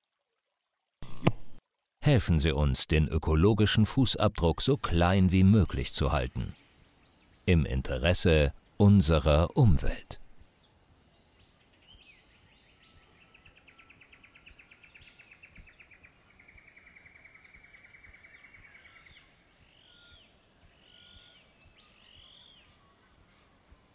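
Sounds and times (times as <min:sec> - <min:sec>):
faint birdsong trill: 0:04.4 - 0:23.9.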